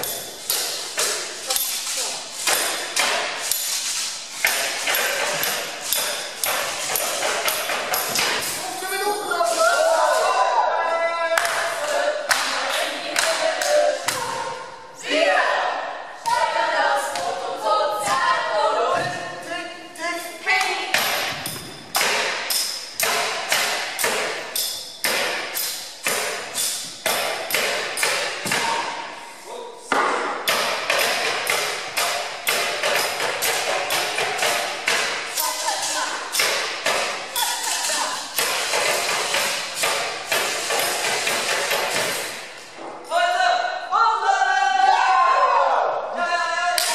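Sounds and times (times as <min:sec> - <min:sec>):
rhythmic percussion beat: 0:00.0 - 0:10.4, 0:16.2 - 0:29.2, 0:29.9 - 0:43.0
group singing a cappella: 0:09.2 - 0:21.4.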